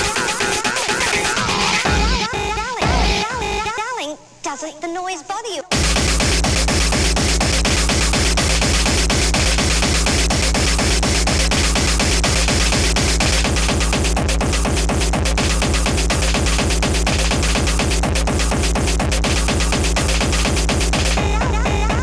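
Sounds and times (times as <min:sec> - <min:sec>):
fast distorted kick drum: 0:00.0 - 0:03.7, 0:05.7 - 0:22.0
harsh noisy electronic layer: 0:00.0 - 0:03.8, 0:05.7 - 0:22.0.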